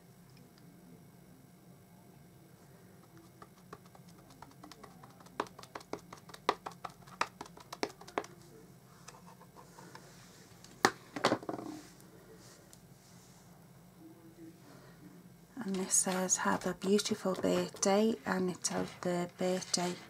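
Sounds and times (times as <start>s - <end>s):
rubber stamp tapping ink pad: 3.0s - 8.3s.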